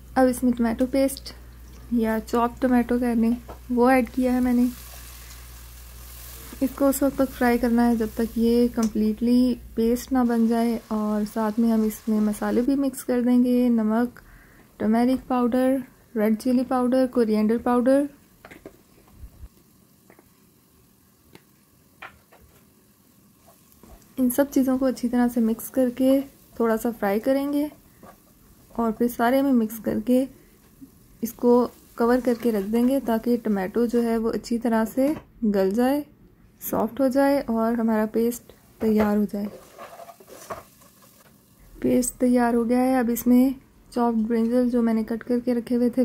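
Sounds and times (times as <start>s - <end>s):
sizzling with small pops: 0.0s - 35.8s, 36.7s - 45.4s
wooden spatula stirring: 27.7s - 29.0s, 39.0s - 41.4s
spatula scraping a pot: 39.4s - 41.2s.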